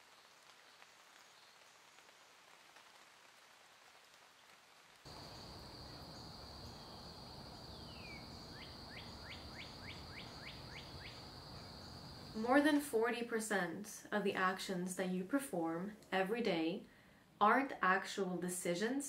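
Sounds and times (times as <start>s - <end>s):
faint steady hiss: 0.0s - 19.0s.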